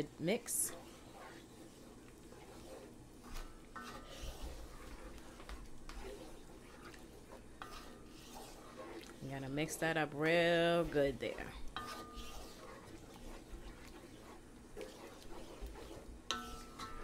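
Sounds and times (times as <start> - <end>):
spoon stirring thick sauce: 0.0 - 17.0.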